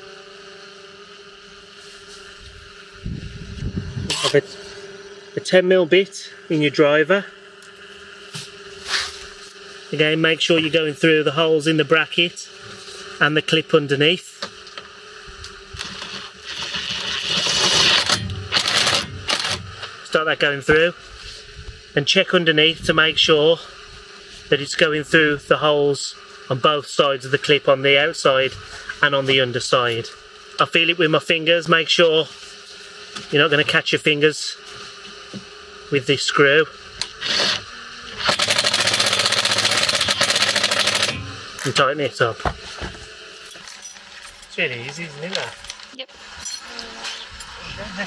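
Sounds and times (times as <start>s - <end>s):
cordless driver motor whirring: 0.0s - 5.4s, 14.5s - 19.9s, 36.8s - 41.8s.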